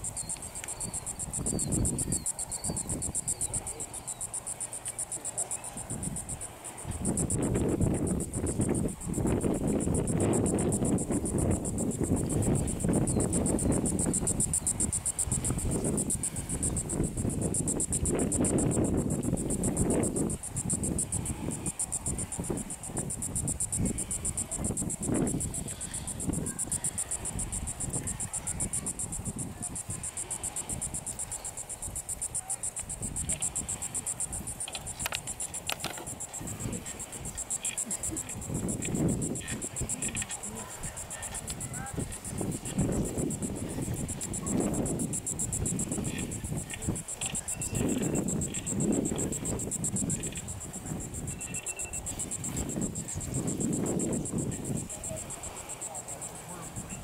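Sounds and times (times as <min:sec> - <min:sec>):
insects trilling: 0:00.0 - 0:57.0.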